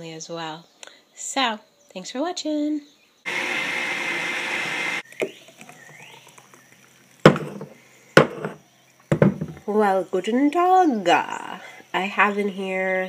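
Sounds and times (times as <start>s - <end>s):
blender running: 3.3s - 5.0s
sharp knocks: 7.3s - 9.6s.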